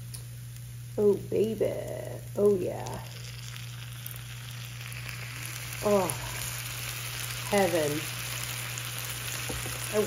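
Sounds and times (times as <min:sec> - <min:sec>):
low steady hum: 0:00.0 - 0:10.0
sauce sizzling in a skillet: 0:01.8 - 0:10.0.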